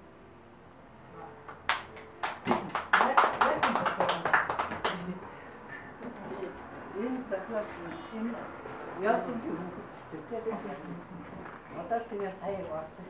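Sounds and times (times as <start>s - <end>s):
people clapping: 1.4s - 5.3s.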